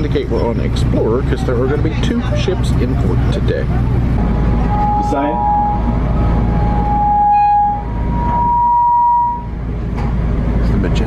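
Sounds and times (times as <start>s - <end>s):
bus engine idling: 0.0s - 11.0s
long steady high tones: 2.3s - 9.8s.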